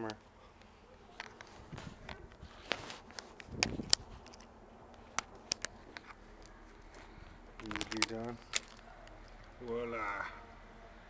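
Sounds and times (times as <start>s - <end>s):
rustling handling noise: 0.0s - 9.9s.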